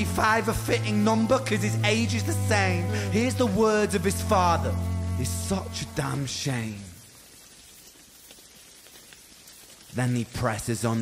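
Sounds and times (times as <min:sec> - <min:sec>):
rain-like patter: 0:00.0 - 0:11.0
light scattered ticks: 0:07.0 - 0:11.0.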